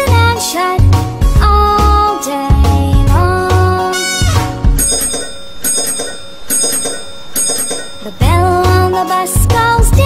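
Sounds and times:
bell ringing in quick pairs: 4.1 - 8.2.

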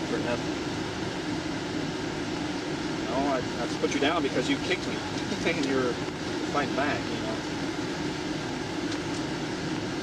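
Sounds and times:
roadside vehicle hum: 0.0 - 10.0.

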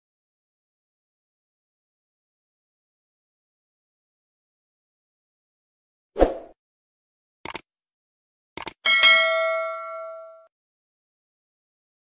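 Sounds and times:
notification bell ding: 8.9 - 10.5.

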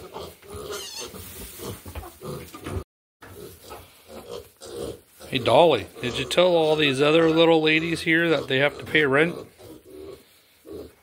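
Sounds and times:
pigs grunting: 0.0 - 11.0.

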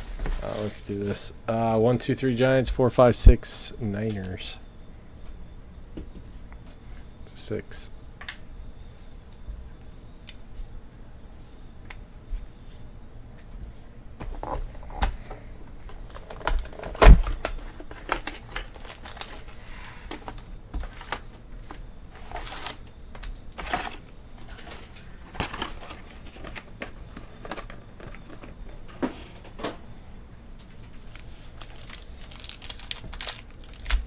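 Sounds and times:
foil packs rustling and crinkling: 0.0 - 1.3, 15.9 - 28.8, 30.7 - 34.0.

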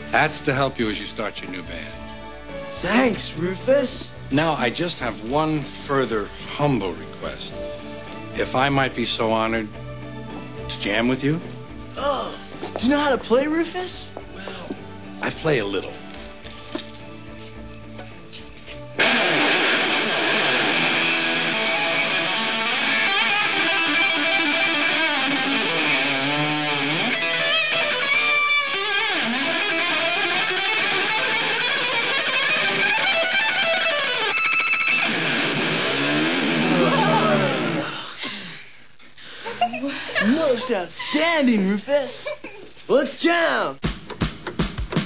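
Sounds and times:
electric guitar solo: 19.0 - 38.0.

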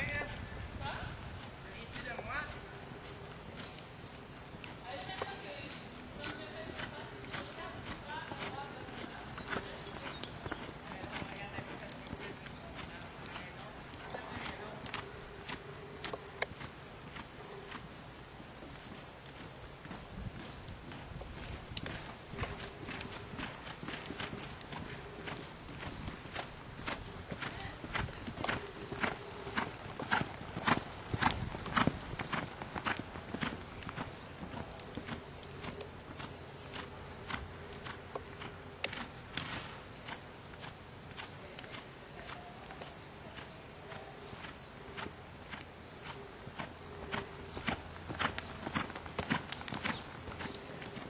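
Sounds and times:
horse hoofbeats: 0.0 - 51.0.

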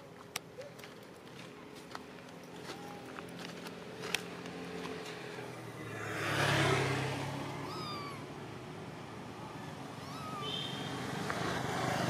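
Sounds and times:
vehicle passing: 3.0 - 12.0
animal mewing call: 7.6 - 8.3, 9.6 - 10.8.

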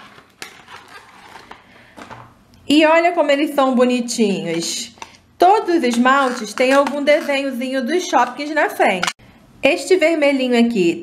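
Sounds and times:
cardboard and plastic rustles: 0.0 - 2.3.

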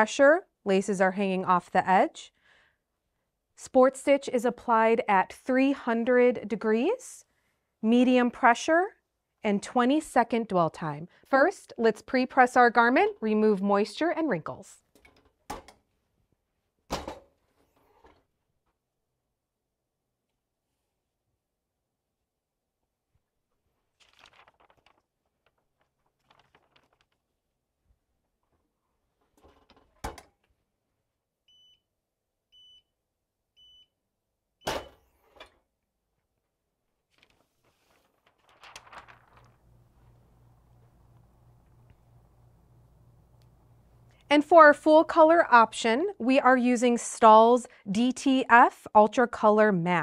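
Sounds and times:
paper sheet rustling: 23.5 - 27.5, 37.0 - 40.3.

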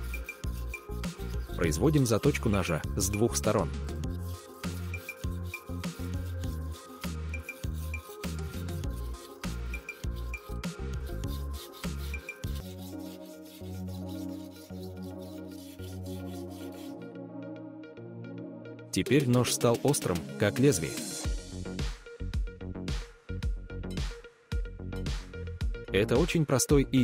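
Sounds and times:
background music with a beat: 0.0 - 17.0, 19.1 - 27.0
knife rasping on sharpening stone: 0.0 - 17.0.

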